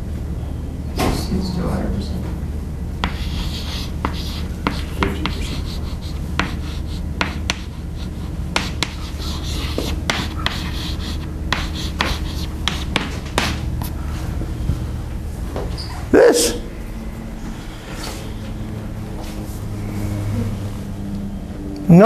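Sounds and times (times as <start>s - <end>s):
low room hum: 0.0s - 22.0s
chalk writing on chalkboard: 3.0s - 14.0s.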